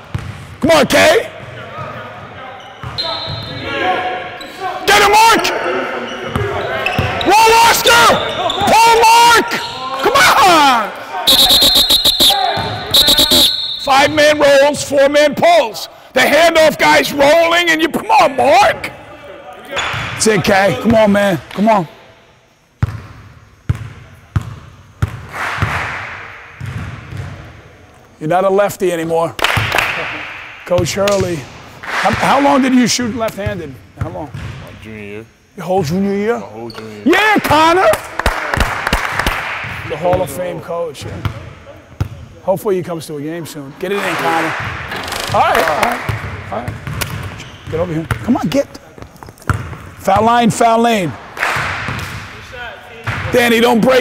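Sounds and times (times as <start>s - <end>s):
basketball bouncing on wooden floor: 0.1s - 0.4s
basketballs bouncing on wooden floor: 0.1s - 0.5s, 26.6s - 27.4s, 45.6s - 50.3s
players' voices: 0.6s - 22.2s, 27.2s - 54.0s.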